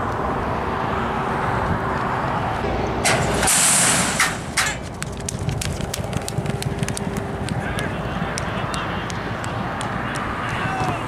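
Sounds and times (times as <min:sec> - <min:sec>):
sharp metallic bangs: 0:03.0 - 0:04.9
horses galloping on dirt: 0:04.8 - 0:11.0.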